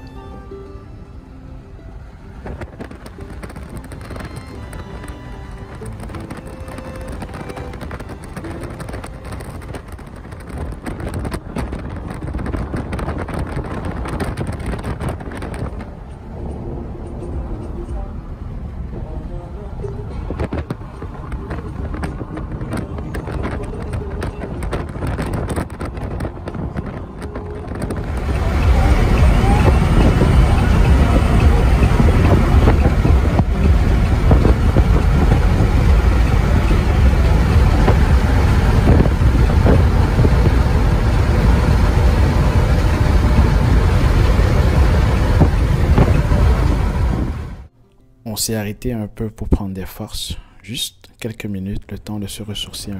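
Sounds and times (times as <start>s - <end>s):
loud steady low rumble: 0.0s - 47.7s
road and wind noise in vehicle cab: 0.0s - 52.9s.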